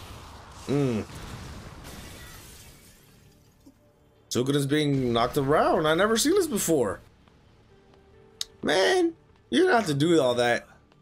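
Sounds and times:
shattered glass and debris settling: 1.1s - 3.7s.

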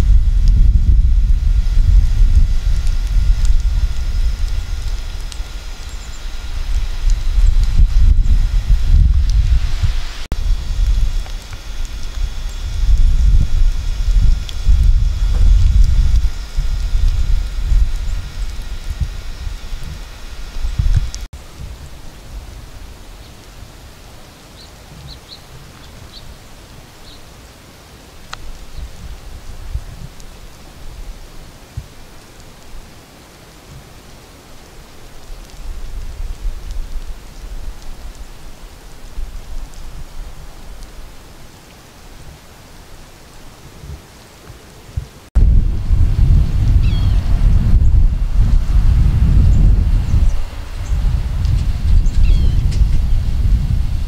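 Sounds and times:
wind buffeting the microphone: 0.0s - 24.0s, 28.3s - 32.2s, 35.1s - 42.5s, 44.9s - 54.0s.

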